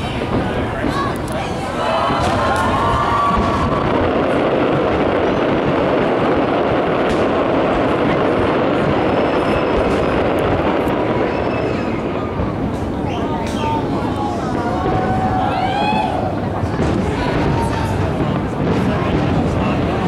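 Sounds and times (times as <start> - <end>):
distant fireworks bursts and crackles: 0.0 - 20.0.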